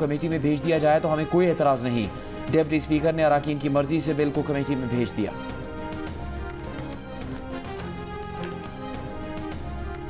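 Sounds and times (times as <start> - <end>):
person speaking: 0.0 - 5.4
background music: 0.0 - 10.0.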